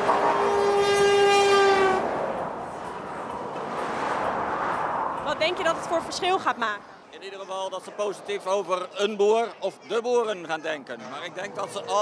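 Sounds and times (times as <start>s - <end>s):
motorway traffic noise: 0.0s - 12.0s
lorry air horn blast: 0.2s - 2.0s.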